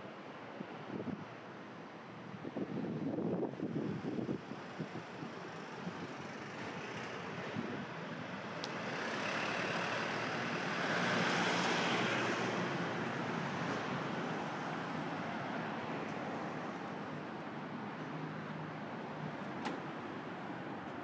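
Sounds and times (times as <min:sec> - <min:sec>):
wind buffeting microphone: 0:02.4 - 0:06.2.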